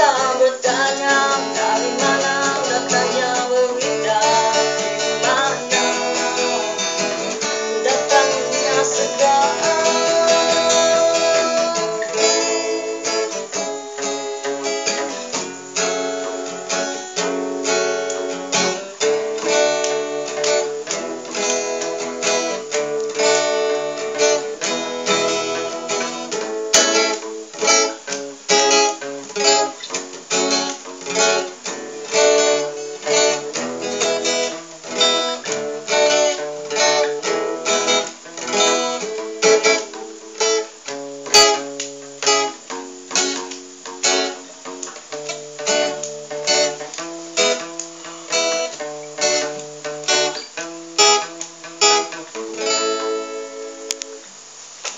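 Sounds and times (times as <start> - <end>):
acoustic guitar strumming: 0.0 - 54.9.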